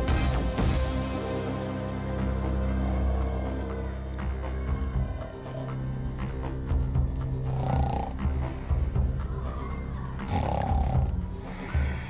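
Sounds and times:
background music with pulsing beat: 0.0 - 12.0.

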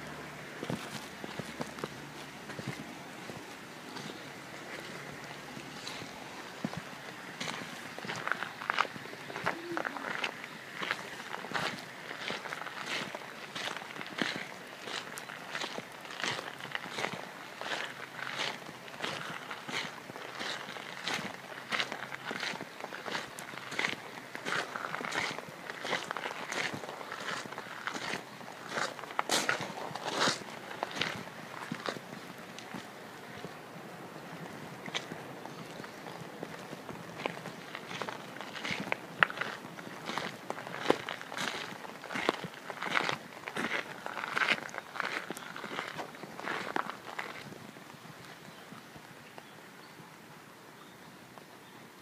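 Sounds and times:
footsteps on garden path: 0.0 - 49.5.

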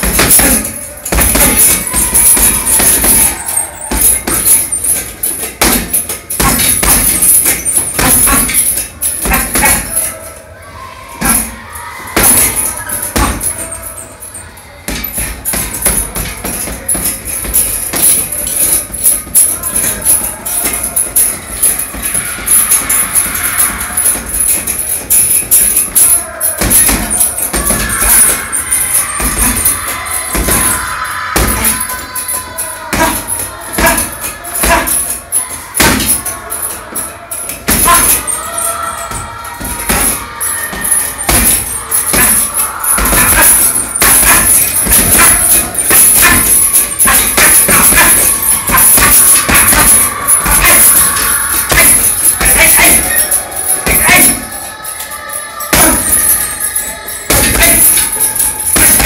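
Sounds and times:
punches on heavy punching bag: 0.0 - 10.1, 14.9 - 31.9, 32.9 - 35.0, 35.8 - 36.3, 37.7 - 38.3, 39.1 - 53.1, 55.7 - 56.2, 57.3 - 58.1, 58.7 - 59.0
hanging chain jingling: 0.0 - 10.4, 11.2 - 59.0.

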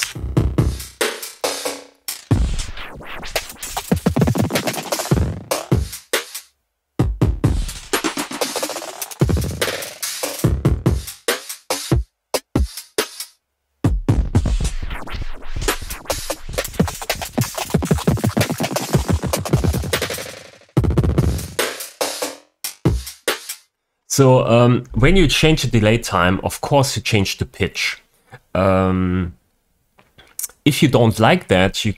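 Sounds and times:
electronic drum loop: 0.0 - 6.4, 7.0 - 13.0, 13.9 - 22.1, 22.7 - 23.5.

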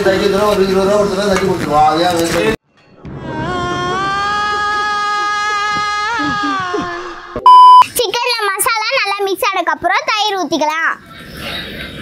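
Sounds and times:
loud censor beep: 7.4 - 7.8.

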